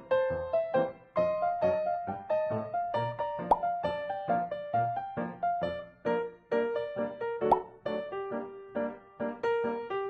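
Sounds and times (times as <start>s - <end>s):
light keyboard background music: 0.0s - 10.0s
sharp pop sound effect: 7.4s - 7.8s.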